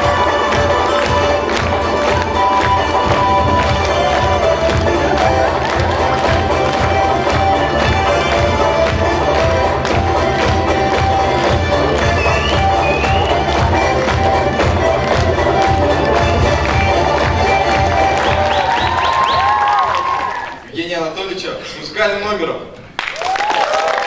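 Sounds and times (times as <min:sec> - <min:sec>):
fast dance music with drumbeat: 0:00.0 - 0:19.4
audience cheering: 0:17.7 - 0:20.7, 0:23.0 - 0:24.0.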